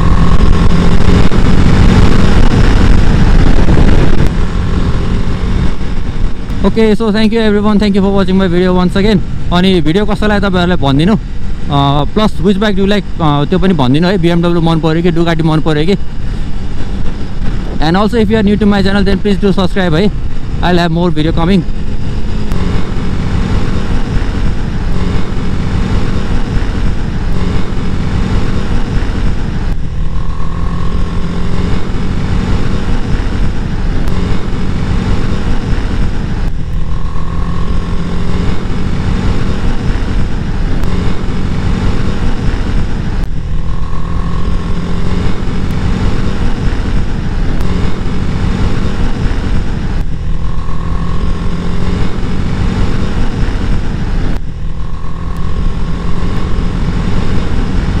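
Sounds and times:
motorcycle engine cruising: 0.0 - 58.0
wind rush on microphone: 0.0 - 58.0.

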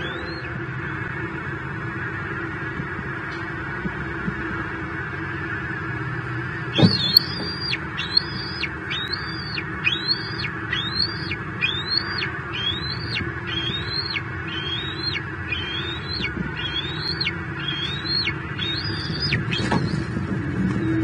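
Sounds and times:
road traffic hum: 0.0 - 21.0
eaglet calling high thin notes: 6.7 - 20.1.

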